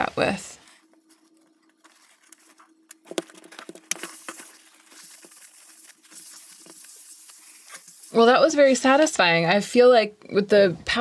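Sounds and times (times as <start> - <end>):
paper towel rustling: 0.6 - 8.4.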